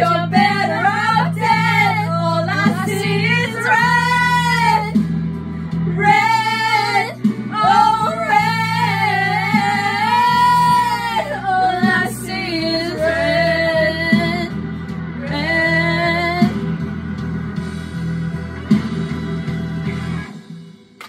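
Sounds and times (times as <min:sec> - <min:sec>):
women singing: 0:00.0 - 0:05.1, 0:05.9 - 0:14.6, 0:15.2 - 0:16.6
pop backing track: 0:00.0 - 0:21.0.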